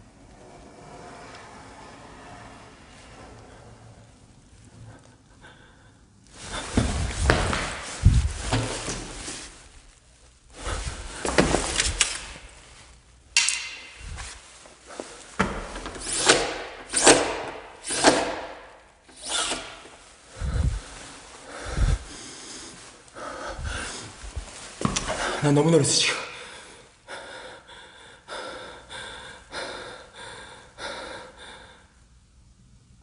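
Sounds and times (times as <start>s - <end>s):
scrapes: 0.0s - 5.1s, 6.3s - 16.6s, 19.1s - 25.4s
rustling and handling things: 6.3s - 25.8s.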